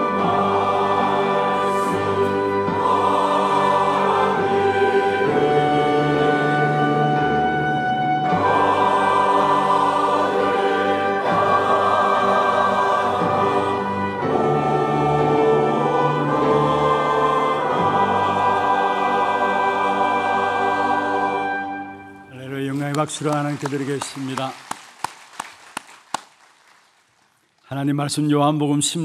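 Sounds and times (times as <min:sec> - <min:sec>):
choir singing a hymn: 0:00.0 - 0:22.2
orchestra strings and brass: 0:00.0 - 0:24.2.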